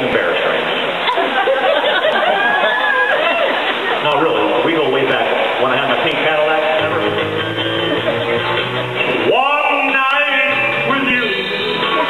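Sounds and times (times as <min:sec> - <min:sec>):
people talking and chuckling: 0:00.0 - 0:12.0.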